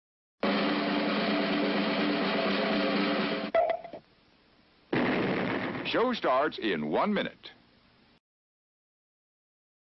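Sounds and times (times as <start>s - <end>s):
cartoon explosion blast: 4.9s - 6.1s.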